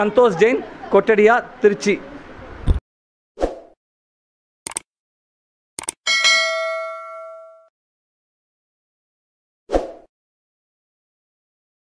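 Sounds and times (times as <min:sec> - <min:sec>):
notification bell ding: 0:06.1 - 0:07.7.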